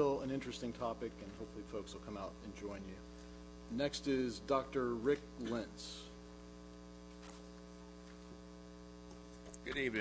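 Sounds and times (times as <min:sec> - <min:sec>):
faint electrical mains hum: 0:00.0 - 0:10.0.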